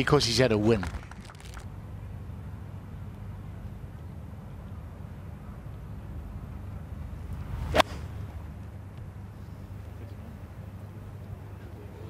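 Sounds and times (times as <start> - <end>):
low steady hum: 0.0 - 12.0
golf club swish: 7.4 - 8.2
club striking golf ball: 7.7 - 8.1.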